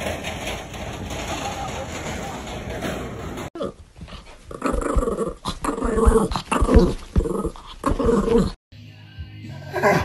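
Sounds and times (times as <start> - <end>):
small dog growling: 3.6 - 8.6.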